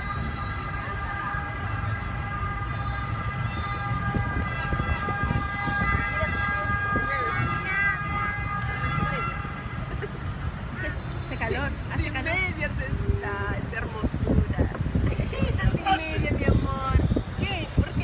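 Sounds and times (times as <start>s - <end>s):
high siren-like tone: 0.0s - 9.4s
traffic rumble: 0.0s - 18.0s.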